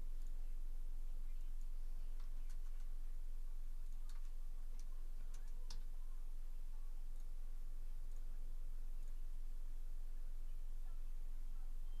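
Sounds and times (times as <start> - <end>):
low hum: 0.0 - 12.0
faint clicks: 1.2 - 9.4.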